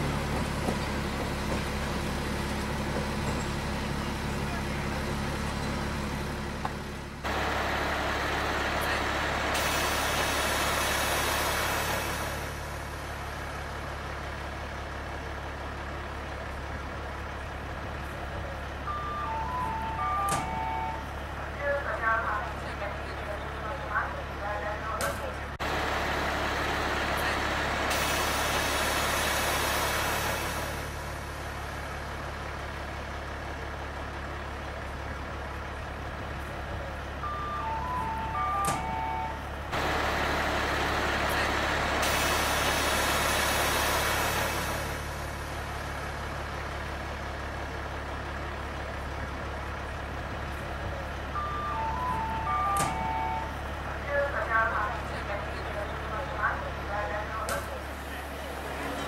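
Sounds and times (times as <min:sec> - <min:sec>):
locomotive idling hum: 0:00.0 - 0:59.0.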